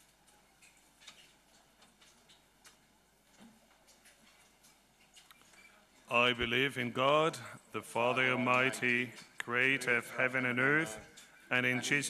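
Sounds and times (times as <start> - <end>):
faint irregular ticks and clicks: 0.0 - 6.5, 11.0 - 11.5.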